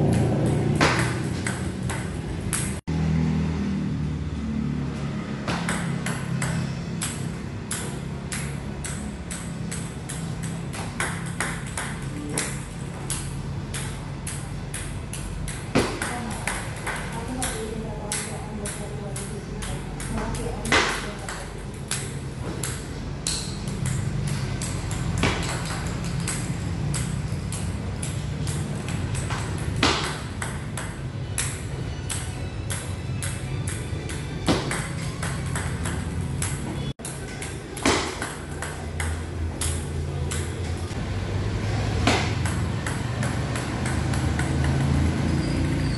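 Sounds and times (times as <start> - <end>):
table tennis ball clicking: 0.0 - 2.8, 5.6 - 40.7, 42.3 - 45.8.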